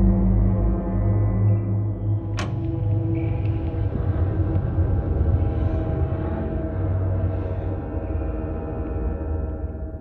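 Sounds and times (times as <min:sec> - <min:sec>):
dark ambient cello and harmonium: 0:00.0 - 0:10.0.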